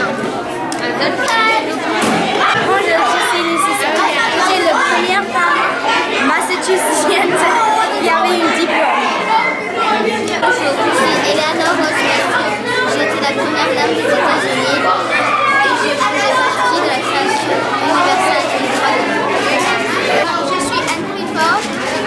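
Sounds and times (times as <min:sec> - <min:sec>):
chatter of many voices: 0:00.0 - 0:22.0.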